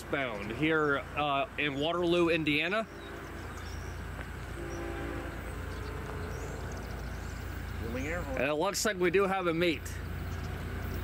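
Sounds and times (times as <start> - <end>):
distant freight train rumble: 0.0 - 11.0
faint train horn: 2.6 - 7.0.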